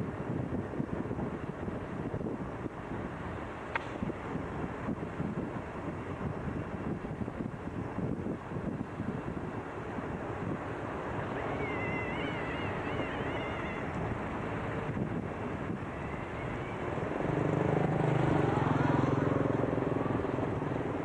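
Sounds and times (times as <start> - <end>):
wind noise on microphone: 0.0 - 21.0
thin wavering high whistle: 11.4 - 13.8.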